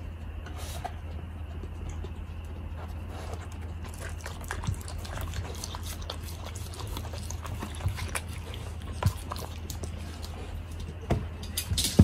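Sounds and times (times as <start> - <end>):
dog licking wooden plate: 3.2 - 10.6.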